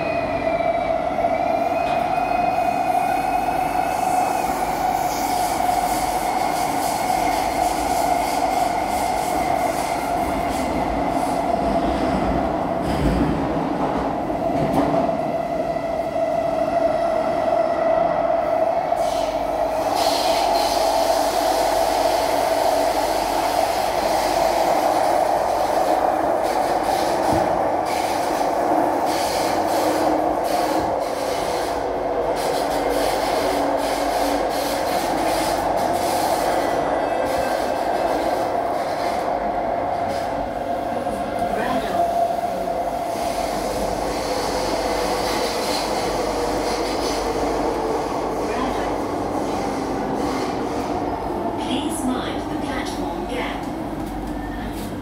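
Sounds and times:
metro train rumble inside car: 0.0s - 55.0s.

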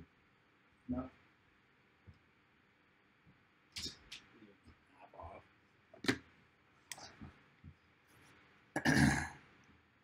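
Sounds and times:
man clearing his throat: 8.8s - 9.4s.

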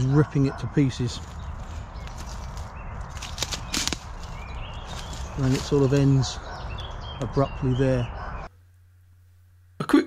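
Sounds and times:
footsteps on dry leaves: 0.8s - 6.4s
twigs snapping: 1.2s - 6.2s.

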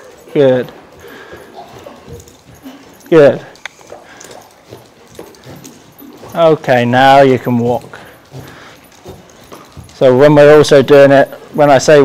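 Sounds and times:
horse breathing: 0.0s - 11.8s
horse footfalls on soft ground: 4.6s - 10.2s.

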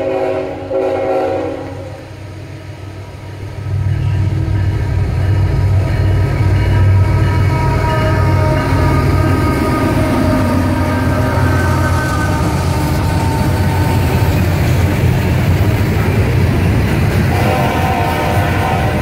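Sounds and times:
locomotive air horn chord: 0.0s - 2.1s, 6.8s - 14.2s, 17.2s - 19.0s
locomotive engine rumble: 0.0s - 19.0s.

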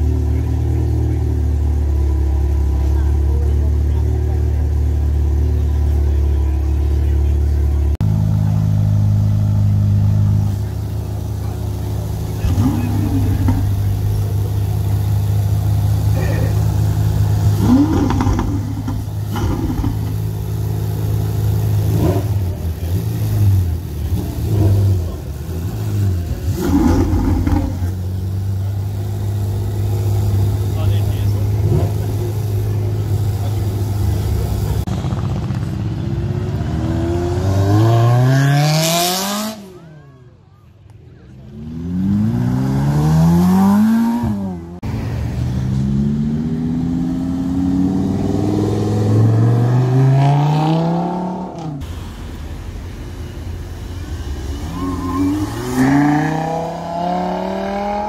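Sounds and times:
people talking: 0.0s - 36.5s, 39.0s - 41.9s
car engines idling: 0.0s - 58.0s.

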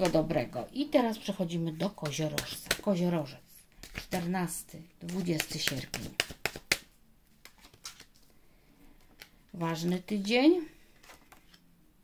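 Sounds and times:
card clicks and rustle: 5.1s - 8.4s, 10.9s - 11.6s.

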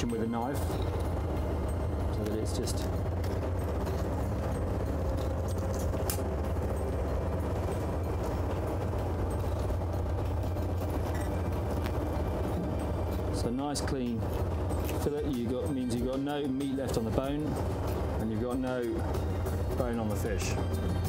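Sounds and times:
boat engine drone: 0.0s - 21.0s.

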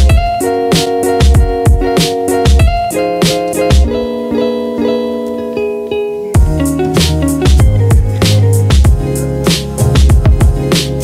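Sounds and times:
heavy beat: 0.0s - 5.2s, 6.3s - 11.0s
plucked guitar music: 0.0s - 11.0s.

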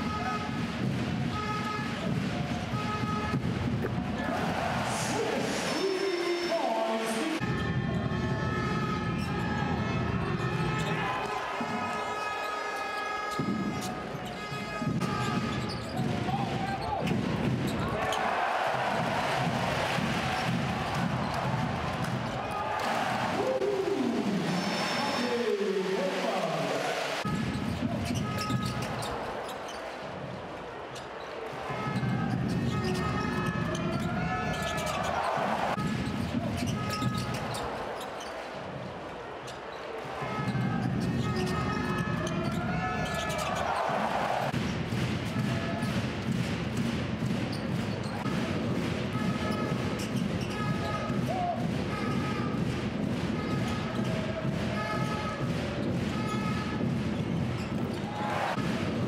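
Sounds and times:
arena crowd noise: 0.0s - 59.0s
basketball bouncing on court: 13.3s - 23.3s, 27.3s - 31.3s, 31.9s - 38.5s, 40.4s - 59.0s.

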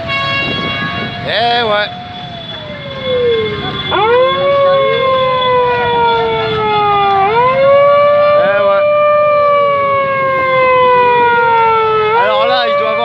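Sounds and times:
siren wailing: 0.0s - 13.0s.

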